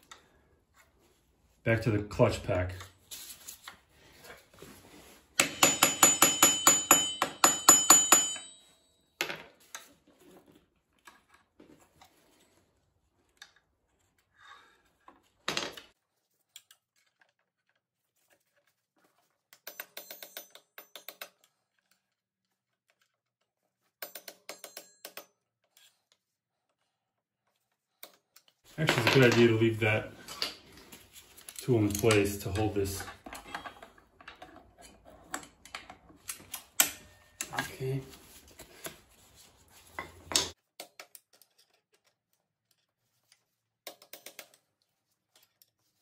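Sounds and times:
ringing metal-on-metal taps: 5.4s - 8.8s.

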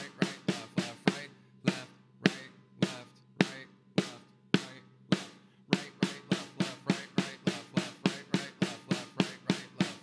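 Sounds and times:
drum struck with sticks: 0.0s - 10.0s.

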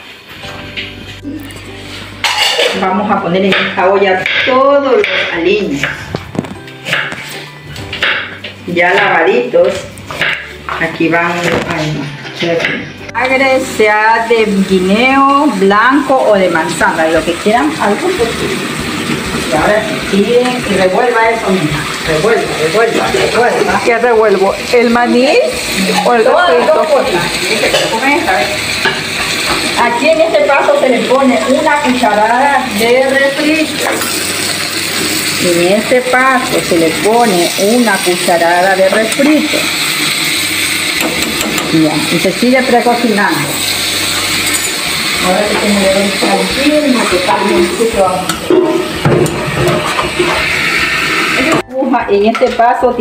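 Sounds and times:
food sizzling in a pot: 0.0s - 53.0s
music: 0.0s - 53.0s.

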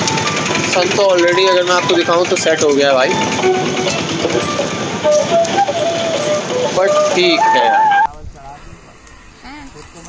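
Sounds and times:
motor traffic din: 0.0s - 10.0s
faint voices: 6.6s - 10.0s.

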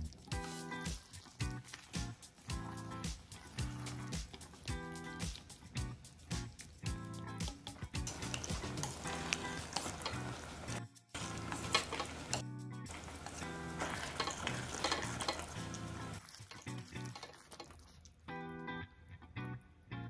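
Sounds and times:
background music: 0.0s - 17.6s
sauce sizzling and bubbling: 0.0s - 18.4s
metal chopsticks stirring: 7.6s - 18.0s.

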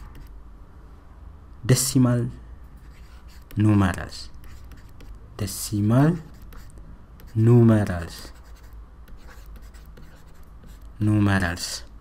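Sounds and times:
pen scratching on paper: 0.0s - 0.3s, 2.8s - 3.6s, 4.4s - 5.2s, 6.1s - 10.9s.

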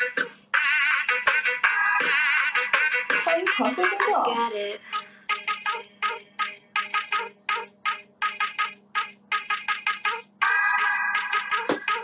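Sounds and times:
electronic dance music: 0.0s - 4.4s, 10.0s - 12.0s.

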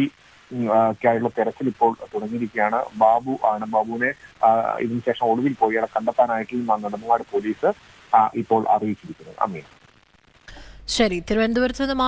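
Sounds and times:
man talking: 0.0s - 9.7s.

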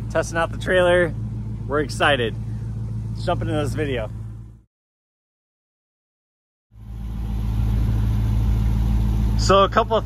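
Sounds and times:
vehicle engine idling: 0.0s - 4.7s, 6.7s - 10.0s.

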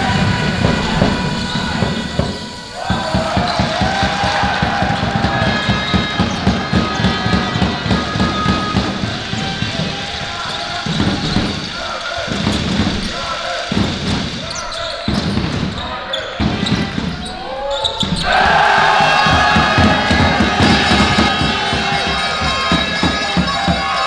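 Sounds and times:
sneakers squeaking: 0.2s - 24.0s.

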